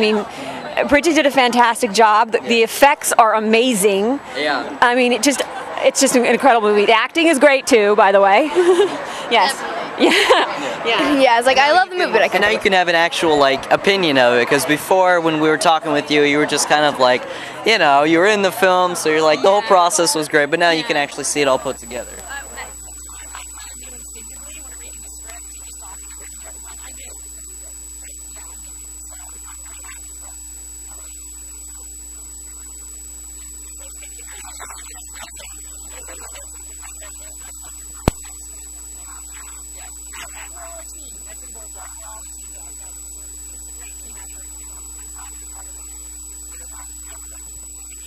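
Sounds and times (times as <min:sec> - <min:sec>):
electrical mains hum: 0:00.0 - 0:48.0
faint voices: 0:00.0 - 0:48.0
thin high whine: 0:00.0 - 0:48.0
sharp click: 0:38.0 - 0:38.4.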